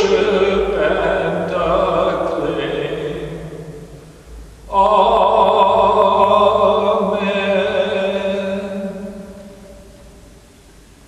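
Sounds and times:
man chanting one note: 0:00.0 - 0:03.8
church reverberation: 0:00.0 - 0:10.7.

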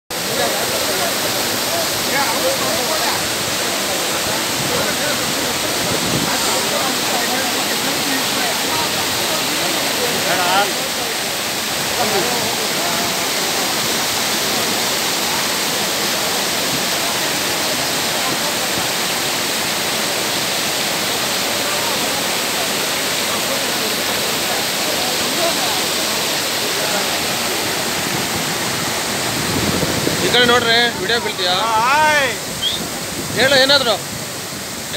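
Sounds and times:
floodwater rushing: 0:00.1 - 0:34.9.

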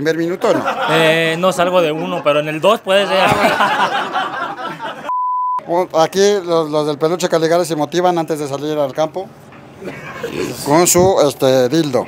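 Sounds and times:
men talking and laughing: 0:00.0 - 0:05.1, 0:09.3 - 0:11.4
censor bleep: 0:05.1 - 0:05.6.

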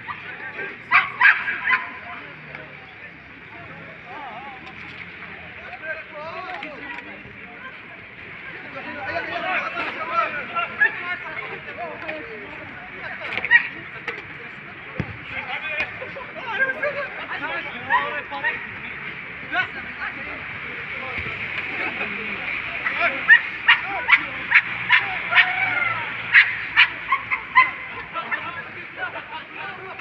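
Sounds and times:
faint background voices: 0:00.0 - 0:30.0
players shouting: 0:00.0 - 0:30.0
football kick thump: 0:15.0 - 0:15.9, 0:21.1 - 0:21.4.

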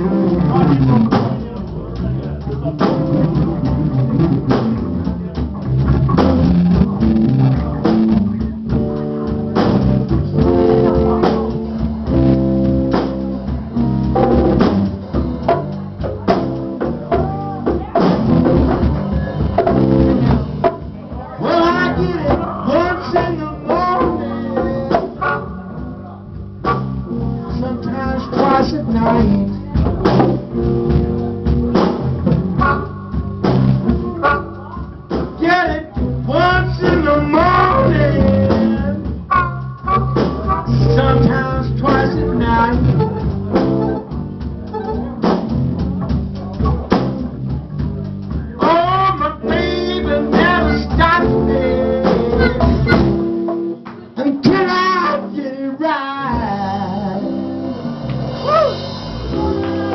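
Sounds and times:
bass line: 0:00.0 - 0:59.9
live band playing: 0:00.0 - 0:59.9
person singing: 0:16.3 - 0:20.4, 0:21.2 - 0:25.8, 0:26.7 - 0:31.6, 0:33.8 - 0:45.4, 0:48.5 - 0:53.3, 0:54.2 - 0:59.9.

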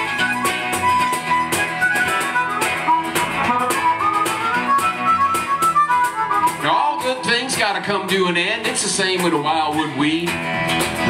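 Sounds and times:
harmonica solo: 0:00.0 - 0:07.5
strummed guitar: 0:00.0 - 0:11.0.

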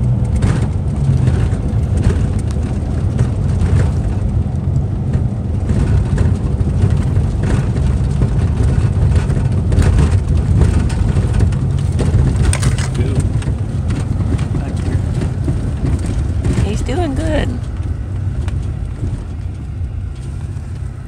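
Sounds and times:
car cabin road and engine rumble: 0:00.0 - 0:21.0.

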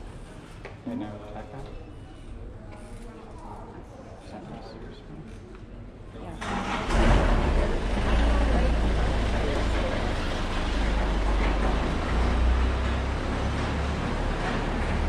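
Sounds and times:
street noise: 0:00.0 - 0:15.0
vehicle engine rumbling: 0:06.3 - 0:15.0.

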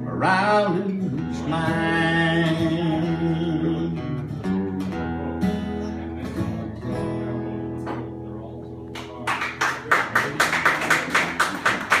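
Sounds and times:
hands clapping in applause: 0:08.9 - 0:12.0.

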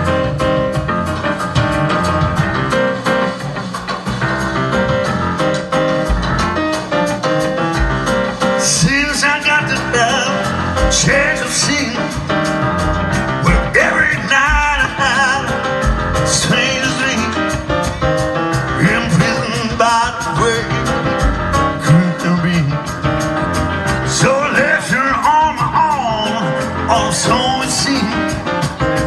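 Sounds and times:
drum kit beat: 0:00.0 - 0:29.0
electric bass: 0:00.0 - 0:29.0.

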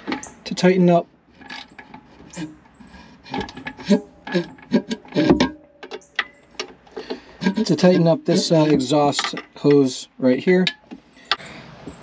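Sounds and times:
metallic knocks: 0:01.4 - 0:10.0, 0:10.6 - 0:12.0.

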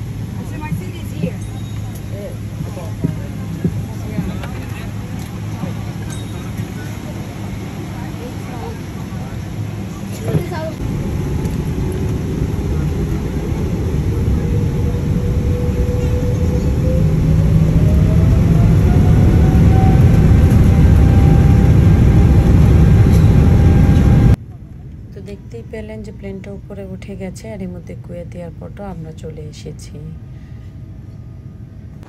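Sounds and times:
jet engines roaring in cabin: 0:00.0 - 0:27.0
engine whine rising in pitch: 0:02.2 - 0:24.4.

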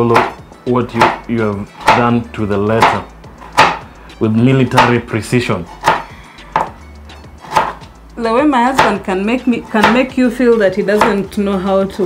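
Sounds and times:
knife chopping on cutting board: 0:00.0 - 0:03.9, 0:04.6 - 0:07.9, 0:08.7 - 0:10.2, 0:10.8 - 0:11.3.

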